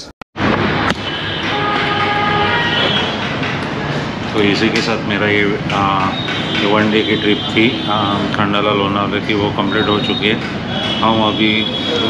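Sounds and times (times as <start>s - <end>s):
train rumbling: 1.4s - 12.0s.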